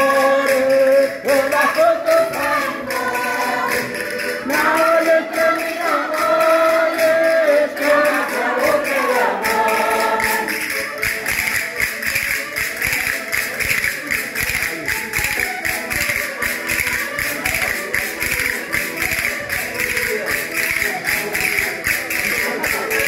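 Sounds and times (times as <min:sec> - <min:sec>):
button accordion folk tune: 0:00.0 - 0:23.0.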